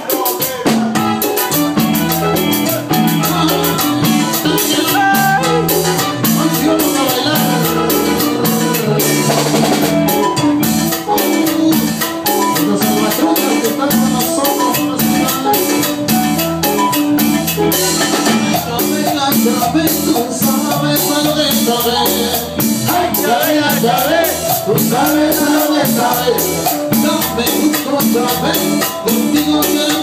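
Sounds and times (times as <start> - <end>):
cumbia band playing: 0.0 - 30.0
hand-played conga drum: 0.0 - 30.0.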